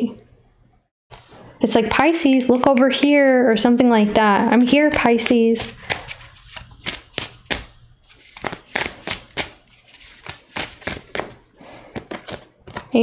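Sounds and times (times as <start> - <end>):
cards being shuffled: 5.0 - 13.0.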